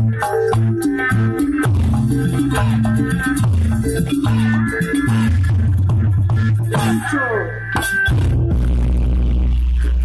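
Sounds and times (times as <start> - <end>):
loud dance music: 0.0 - 10.0
deep bass note: 1.2 - 10.0.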